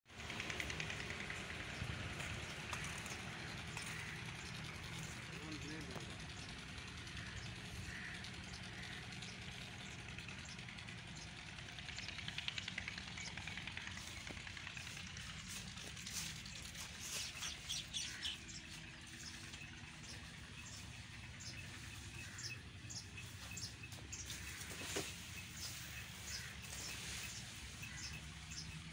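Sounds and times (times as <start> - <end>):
birds chirping: 0.1 - 28.9.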